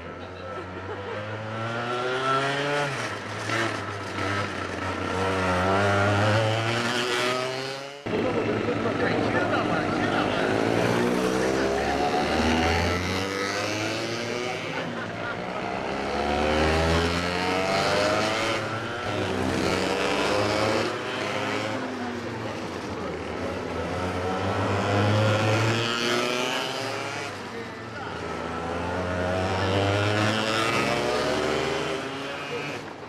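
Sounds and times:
kart engines accelerating: 0:00.0 - 0:33.0.

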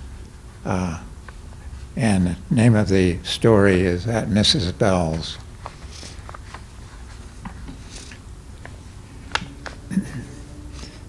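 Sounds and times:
room hum: 0:00.0 - 0:11.0
low throat sound: 0:09.8 - 0:11.0.

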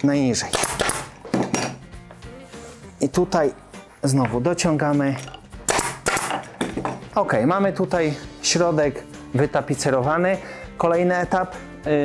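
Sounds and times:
staple gun firing: 0:00.5 - 0:01.2, 0:05.7 - 0:06.4.

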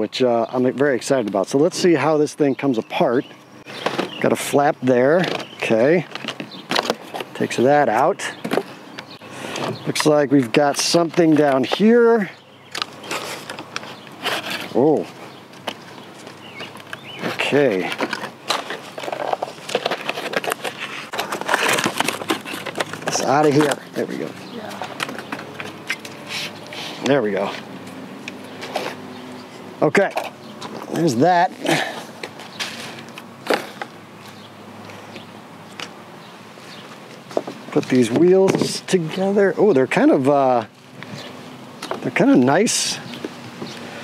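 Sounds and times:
outdoor background hiss: 0:00.0 - 0:44.0
cardboard rattles and rustles: 0:12.8 - 0:25.8.

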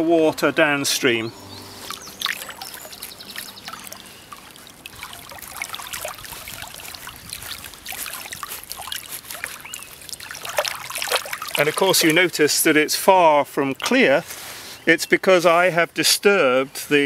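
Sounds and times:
stream water trickling and splashing: 0:00.4 - 0:15.8
hand stirring water: 0:01.7 - 0:12.7.

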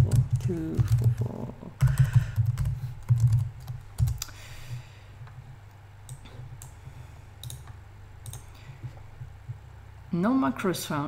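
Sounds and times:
computer keyboard typing: 0:00.0 - 0:04.3, 0:06.0 - 0:06.8, 0:07.4 - 0:09.3
desk fan hum: 0:00.0 - 0:11.0.

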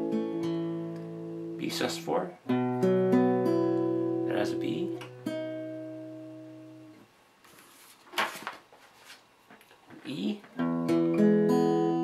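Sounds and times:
acoustic guitar chord strummed: 0:00.0 - 0:07.0, 0:10.2 - 0:12.0
rustling noise: 0:07.4 - 0:10.6.

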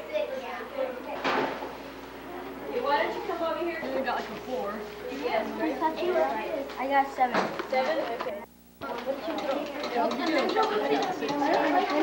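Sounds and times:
students talking at once: 0:00.0 - 0:12.0.

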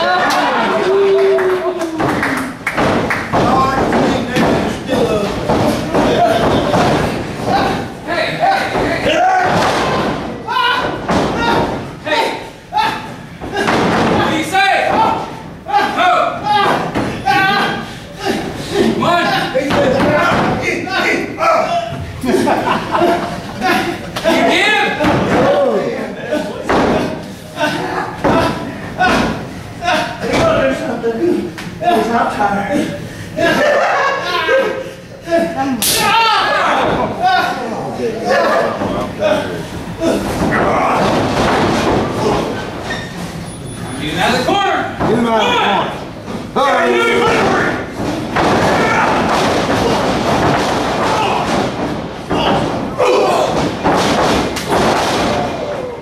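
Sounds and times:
people shouting: 0:00.0 - 0:30.6, 0:33.5 - 0:42.7, 0:44.5 - 0:46.0, 0:46.6 - 0:56.0
wrestlers thudding on ring canvas: 0:01.8 - 0:20.9, 0:24.2 - 0:25.7, 0:26.6 - 0:27.3, 0:38.3 - 0:43.4, 0:44.5 - 0:55.8.

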